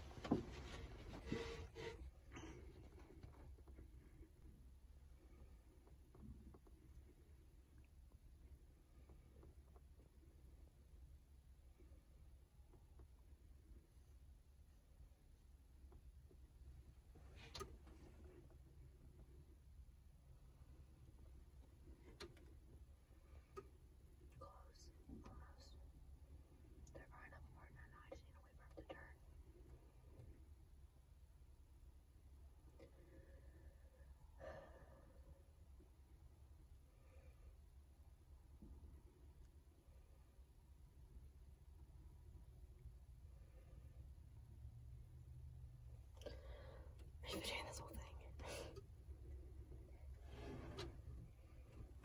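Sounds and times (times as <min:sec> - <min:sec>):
faint rustling: 0:00.0 - 0:07.6, 0:46.1 - 0:52.0
low background hum: 0:00.0 - 0:52.0
soft whisper: 0:17.2 - 0:30.6, 0:46.0 - 0:52.0.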